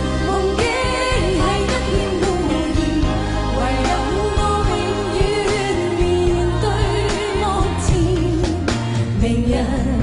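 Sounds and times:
band accompaniment: 0.0s - 10.0s
steady bass line: 0.0s - 10.0s
women singing a pop duet: 0.0s - 10.0s.

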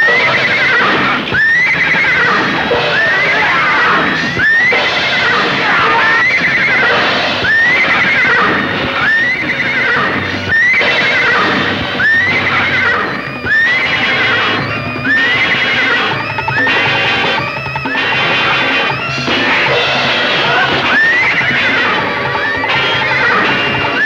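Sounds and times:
shrill whinny-like cry: 0.0s - 24.0s.

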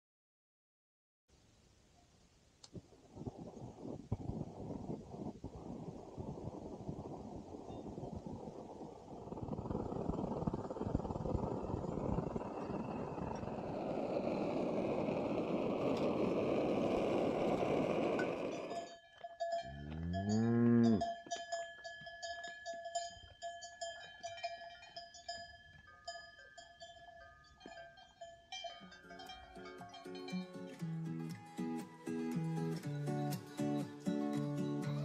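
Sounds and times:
steady rushing noise: 3.0s - 18.8s
cow lowing: 9.2s - 18.9s, 19.7s - 21.0s
cowbells ringing: 17.8s - 31.6s.

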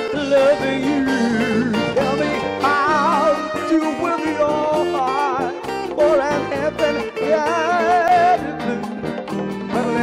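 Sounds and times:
bass: 0.0s - 10.0s
drums: 0.0s - 10.0s
keyboard: 0.0s - 10.0s
wavering lead melody: 0.0s - 10.0s.

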